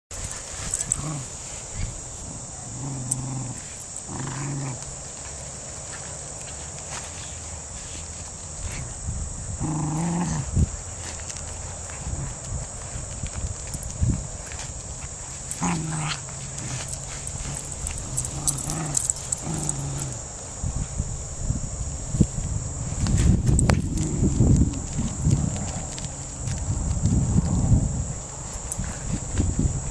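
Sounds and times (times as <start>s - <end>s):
dogs growling in play: 0.2s - 5.4s, 9.6s - 12.4s, 15.4s - 20.4s, 23.6s - 26.6s.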